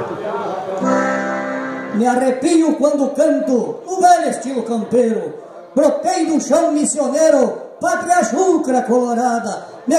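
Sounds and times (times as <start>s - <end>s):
accordion playing: 0.8s - 2.4s.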